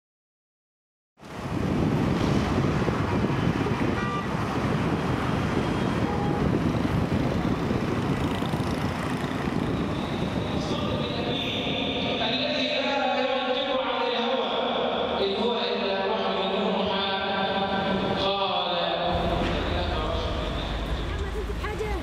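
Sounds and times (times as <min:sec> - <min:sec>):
city traffic rumble: 0:01.2 - 0:13.0, 0:14.6 - 0:18.4, 0:19.0 - 0:22.0
wind: 0:01.2 - 0:22.0.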